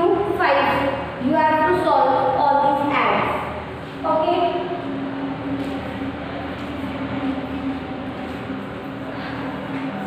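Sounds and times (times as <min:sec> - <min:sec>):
even background noise: 0:00.0 - 0:10.0
steady low hum: 0:00.0 - 0:10.0.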